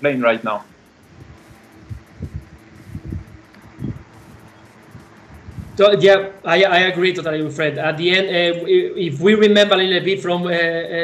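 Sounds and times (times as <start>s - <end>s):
faint steady hum: 0.0s - 11.0s
muffled bumps and rustling: 1.0s - 6.0s.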